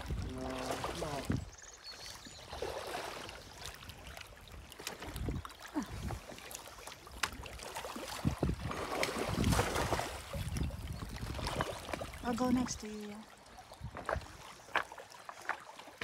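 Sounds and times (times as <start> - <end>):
wind buffeting microphone: 0.0 - 1.6, 4.5 - 6.4, 8.0 - 12.8, 13.7 - 14.4
fish splashing and thrashing: 0.0 - 16.0
water lapping against rocks: 0.0 - 16.0.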